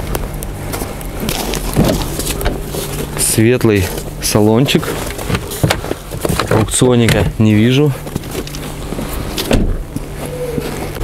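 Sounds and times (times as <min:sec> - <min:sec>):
steady low hum: 0:00.0 - 0:11.0
car door shutting: 0:09.3 - 0:10.7.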